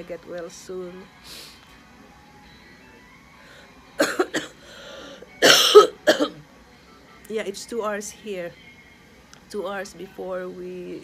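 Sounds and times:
person coughing: 4.0s - 4.6s, 5.4s - 6.4s.

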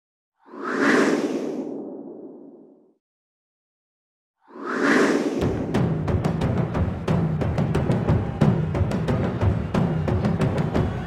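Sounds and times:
whoosh: 0.4s - 3.0s, 4.4s - 6.0s.

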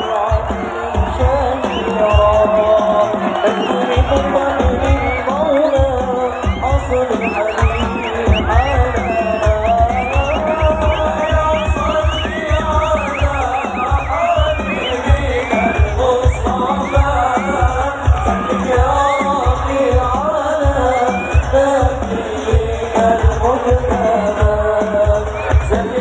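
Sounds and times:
crowd singing along: 0.0s - 26.0s
frame drums beating: 0.0s - 26.0s
voices singing devotional song: 0.0s - 26.0s.

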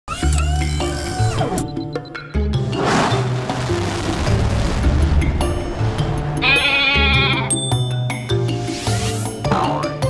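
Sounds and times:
goat bleating: 6.4s - 7.5s.

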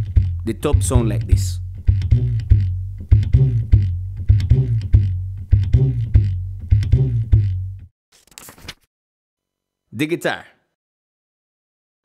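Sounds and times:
washtub bass plucked: 0.0s - 7.9s.

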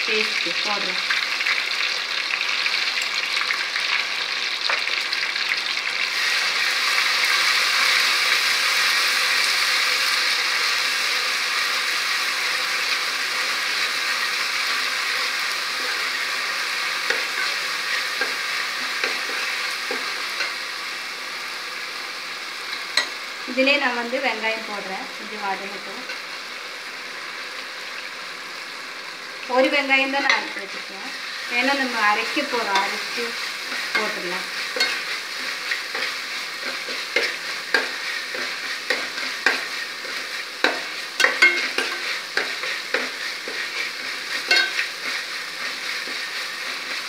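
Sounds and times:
paste sizzling in hot oil: 0.0s - 47.0s.

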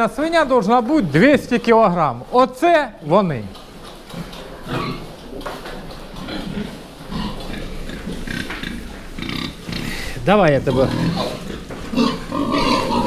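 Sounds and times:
pigs grunting: 3.1s - 13.0s.

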